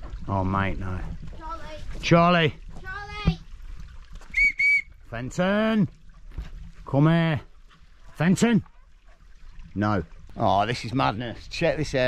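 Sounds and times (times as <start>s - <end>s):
short high whistle blasts: 4.3s - 5.0s.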